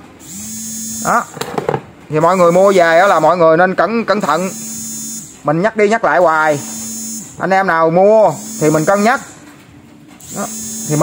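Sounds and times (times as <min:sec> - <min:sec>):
knock of battery pack: 0:01.3 - 0:01.9
man speaking: 0:02.1 - 0:04.6, 0:07.4 - 0:09.4, 0:10.4 - 0:11.0.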